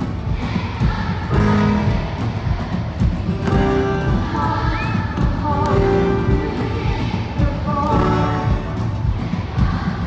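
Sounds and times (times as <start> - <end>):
live band with guitar: 0.0 - 10.0.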